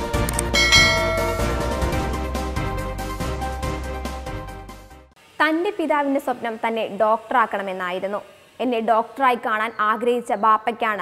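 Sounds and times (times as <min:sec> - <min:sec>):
intro music: 0:00.1 - 0:04.6
bright bell chime: 0:00.5 - 0:02.3.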